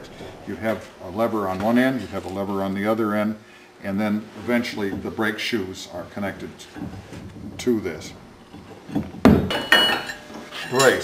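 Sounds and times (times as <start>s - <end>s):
heavy iron parts clanking: 6.2s - 11.0s
metallic ring: 9.5s - 11.0s.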